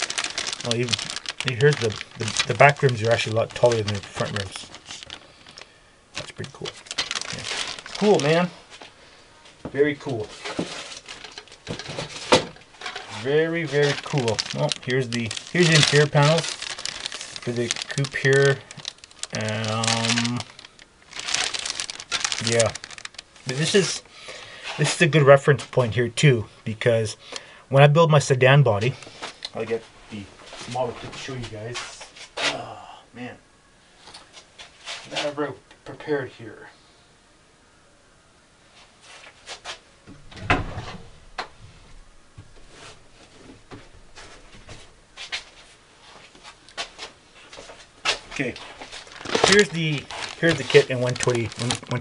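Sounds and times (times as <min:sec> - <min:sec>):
boxes being handled: 0:00.0 - 0:05.6, 0:10.0 - 0:24.0, 0:48.1 - 0:52.0
plastic bag crinkling: 0:00.0 - 0:08.8, 0:09.8 - 0:25.9, 0:48.1 - 0:52.0.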